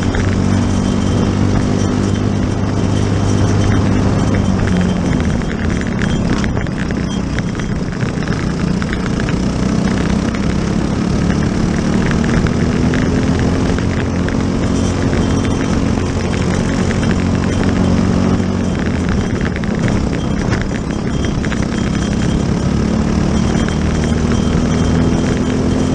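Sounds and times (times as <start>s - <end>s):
kart engine at racing speed: 0.0s - 25.9s.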